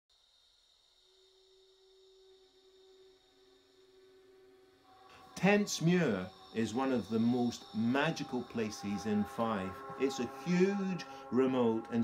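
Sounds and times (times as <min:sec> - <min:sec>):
low pure tones: 0:01.0 - 0:12.0
high pure tone: 0:02.2 - 0:12.0.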